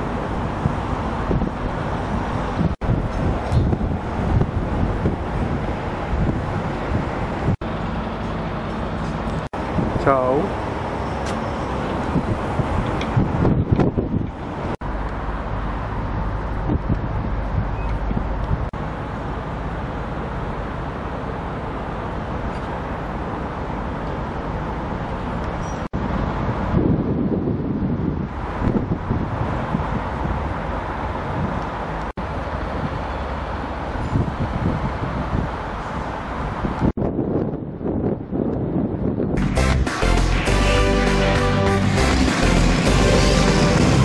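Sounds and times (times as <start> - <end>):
wind buffeting microphone: 0.0 - 18.8, 22.7 - 39.6
street noise: 0.0 - 44.0
music with a beat: 39.4 - 44.0.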